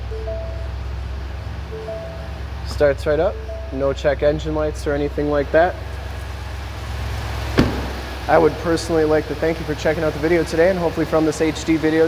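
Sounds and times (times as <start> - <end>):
truck engine idling: 0.0 - 12.0
truck door shutting: 7.5 - 8.4.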